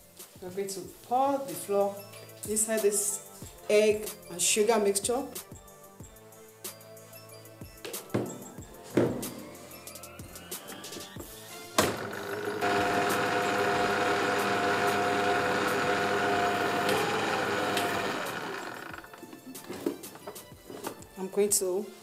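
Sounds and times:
electric stand mixer running: 0:11.8 - 0:19.7.

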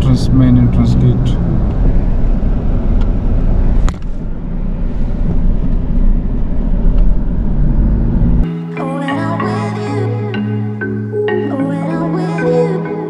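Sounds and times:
road and engine rumble in cabin: 0:00.0 - 0:08.5.

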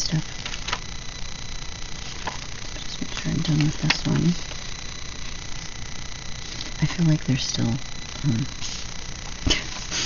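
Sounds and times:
low hum and hiss: 0:00.0 - 0:10.0
woman speaking: 0:02.8 - 0:04.5, 0:06.8 - 0:08.5.

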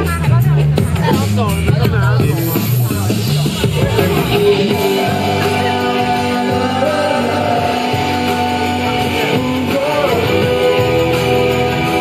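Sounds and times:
man singing into a microphone: 0:01.0 - 0:12.0
strummed guitar: 0:02.5 - 0:12.0.

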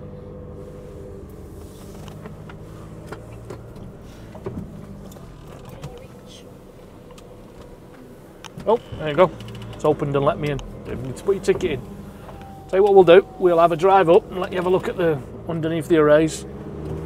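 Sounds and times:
van engine low hum: 0:00.0 - 0:17.0
faint clicks: 0:08.4 - 0:10.7.

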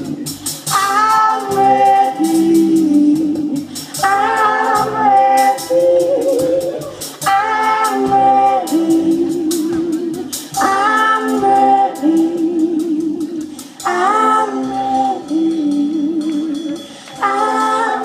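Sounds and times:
live band playing: 0:00.0 - 0:18.0
person singing: 0:00.0 - 0:18.0.

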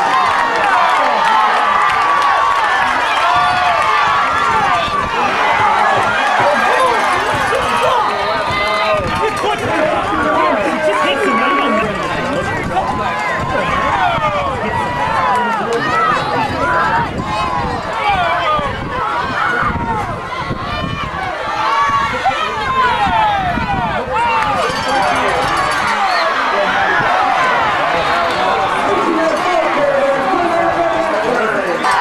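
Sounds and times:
crowd shouting and talking: 0:00.0 - 0:32.0.

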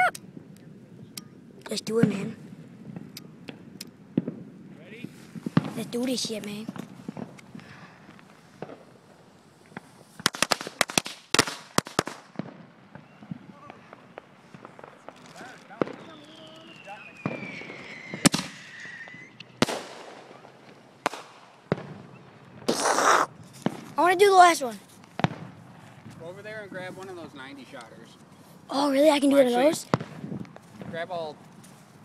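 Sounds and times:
firecrackers cracking: 0:01.2 - 0:32.0
firework bangs: 0:01.8 - 0:26.8, 0:29.7 - 0:31.4
falling firework whistle: 0:12.9 - 0:20.4
loud hissing burst: 0:22.7 - 0:23.4.

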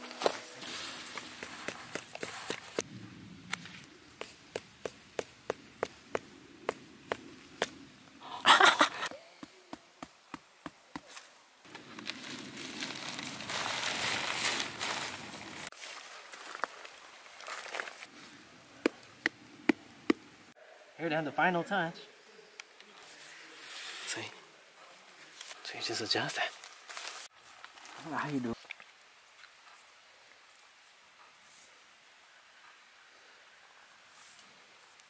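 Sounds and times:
tent fabric rustling: 0:00.0 - 0:02.8, 0:11.0 - 0:18.4, 0:26.6 - 0:28.2.

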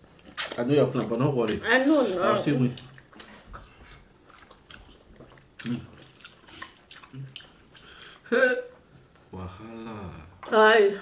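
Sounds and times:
wet chewing and lip-smacking: 0:02.6 - 0:08.8.

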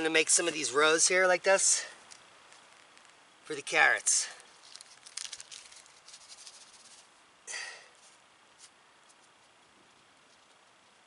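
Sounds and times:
fingers scratching in soil: 0:04.4 - 0:07.1.

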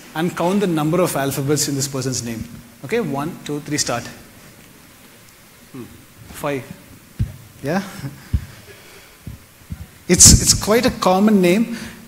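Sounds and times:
faint room noise: 0:00.0 - 0:12.0
soft low thumps: 0:05.8 - 0:11.2.

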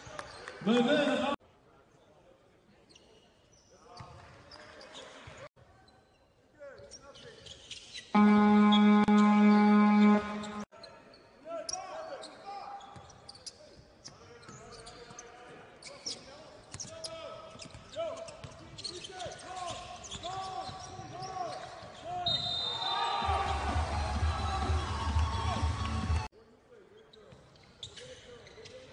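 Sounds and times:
music: 0:23.3 - 0:26.3.

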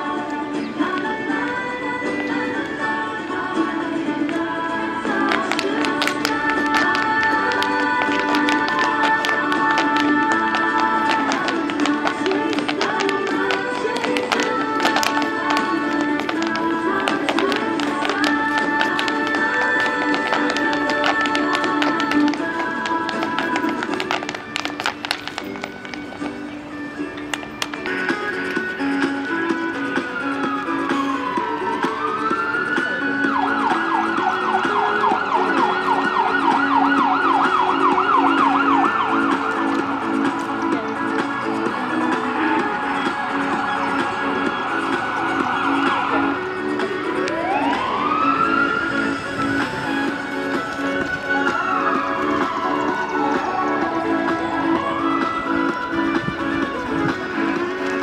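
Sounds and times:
dance shoes tapping pavement: 0:00.0 - 0:58.0
music: 0:00.0 - 0:58.0
dance tune: 0:05.1 - 0:26.5
emergency vehicle siren: 0:28.2 - 0:40.9, 0:41.9 - 0:56.0.

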